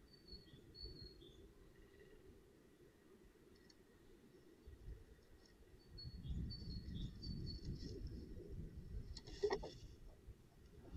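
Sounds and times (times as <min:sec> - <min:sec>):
small birds chirping: 0:00.0 - 0:02.3, 0:05.6 - 0:08.0.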